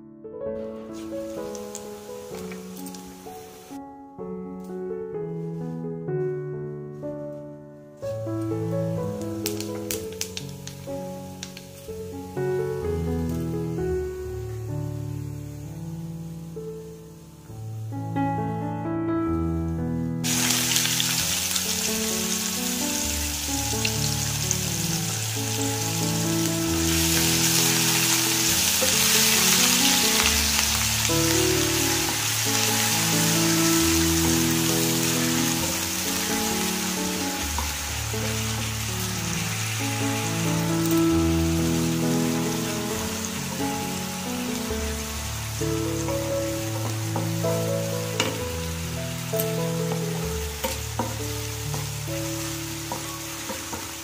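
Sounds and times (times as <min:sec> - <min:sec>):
soft background music: 0:00.6 - 0:54.0
onions sizzling in hot oil: 0:01.0 - 0:03.8, 0:09.1 - 0:17.5, 0:20.2 - 0:54.0
wooden spatula tapping: 0:48.2 - 0:48.5, 0:49.9 - 0:51.9, 0:52.8 - 0:54.0.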